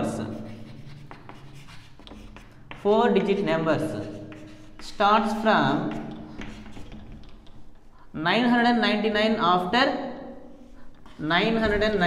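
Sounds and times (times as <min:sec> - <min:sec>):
chalk tapping and scratching on chalkboard: 0:00.0 - 0:08.0, 0:10.6 - 0:12.0.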